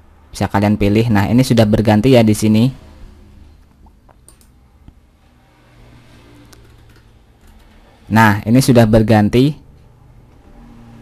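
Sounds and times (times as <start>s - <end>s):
computer mouse clicks: 3.6s - 5.0s, 6.4s - 7.8s.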